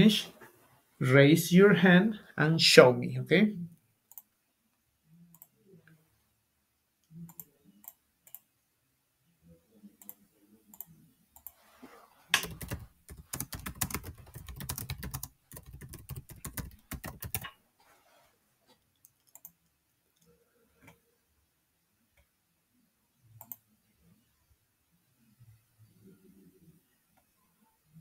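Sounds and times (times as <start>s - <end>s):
computer keyboard typing: 12.4s - 17.5s, 19.0s - 19.6s.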